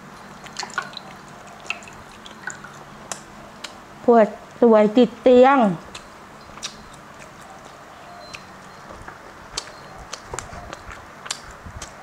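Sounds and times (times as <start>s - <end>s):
person chewing food: 0.0s - 3.8s, 5.9s - 12.0s
faint steady hum: 0.0s - 12.0s.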